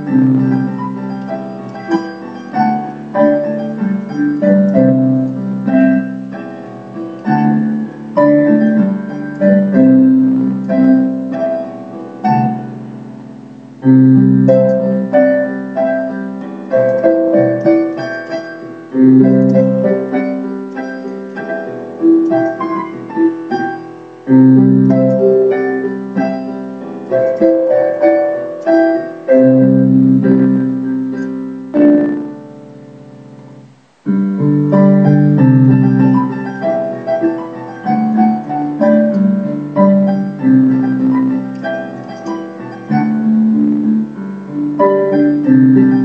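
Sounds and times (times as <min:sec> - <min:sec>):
solo piano pop ballad: 0:00.0 - 0:46.0.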